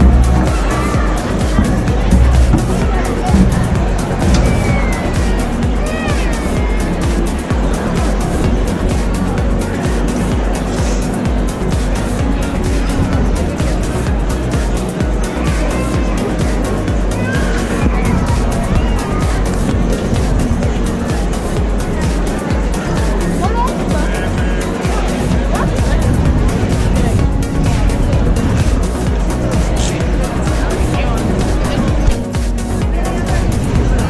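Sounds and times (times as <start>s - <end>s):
music with driving beat: 0.0s - 34.0s.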